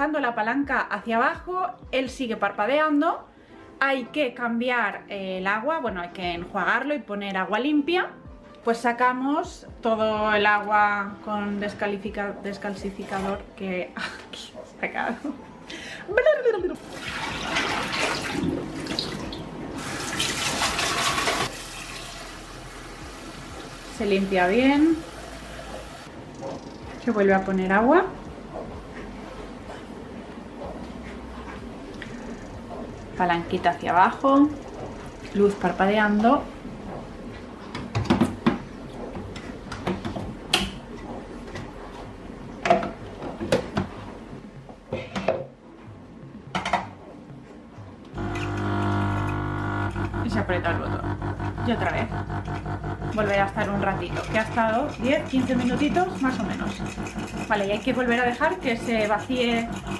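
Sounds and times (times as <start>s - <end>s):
espresso machine pump buzzing: 48.2s - 59.9s.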